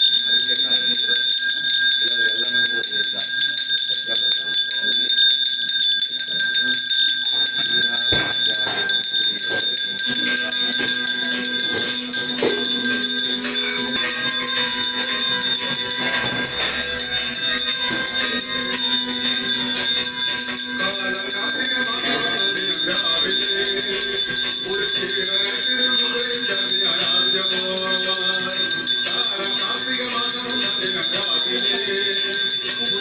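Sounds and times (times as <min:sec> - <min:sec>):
hand bell ringing rapidly: 0:00.0 - 0:33.0
music: 0:00.0 - 0:33.0.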